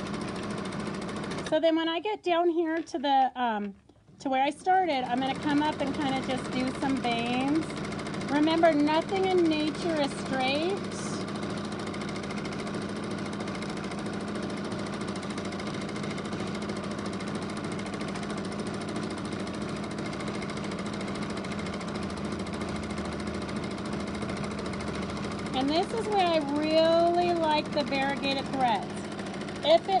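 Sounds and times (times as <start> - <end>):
sewing machine stitching: 0.0 - 1.8, 4.2 - 30.0.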